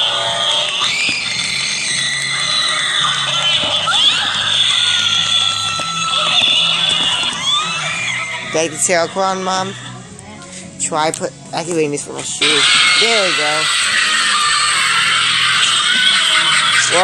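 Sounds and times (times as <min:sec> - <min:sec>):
screams and wailing shrieks: 0:00.0 - 0:10.0, 0:12.4 - 0:17.0.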